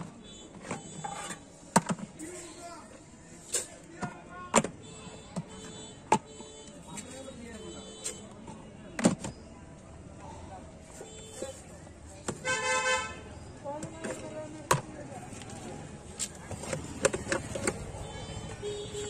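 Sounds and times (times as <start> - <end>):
street noise: 0.0 - 19.0
vehicle horn honk: 12.4 - 13.2, 18.0 - 19.0
plastic jars and lids clicking: 16.4 - 18.0.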